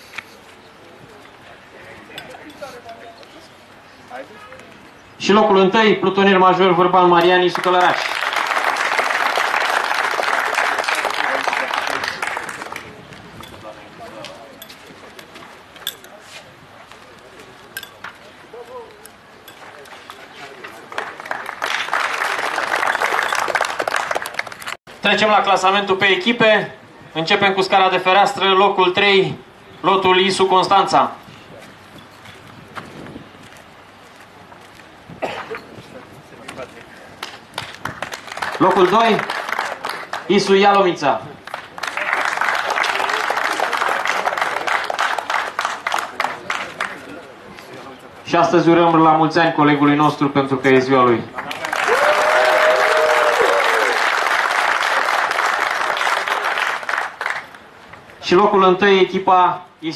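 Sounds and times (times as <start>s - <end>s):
people talking in background: 0.0s - 5.3s, 10.4s - 23.4s, 34.2s - 37.8s, 38.7s - 51.9s
outdoor background noise: 0.0s - 59.9s.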